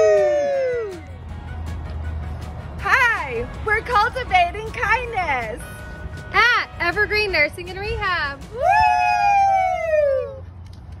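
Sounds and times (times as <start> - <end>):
woman cheering woo: 0.0 - 1.0, 8.5 - 10.4.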